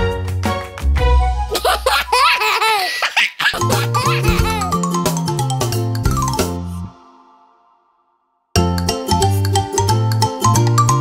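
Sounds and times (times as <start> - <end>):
bouncy children's song music: 0.1 - 6.9, 8.6 - 11.0
cartoon baby giggling: 1.5 - 4.8.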